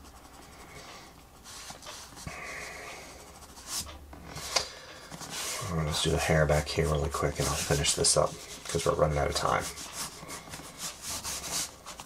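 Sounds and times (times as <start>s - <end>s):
colored pencil scratching on paper: 0.0s - 0.8s, 5.2s - 12.0s.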